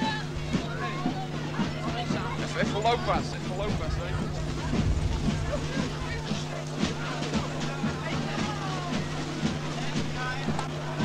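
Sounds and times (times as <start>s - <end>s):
music with steady beat: 0.0s - 11.0s
voices: 0.0s - 11.0s
low hum: 0.4s - 7.8s.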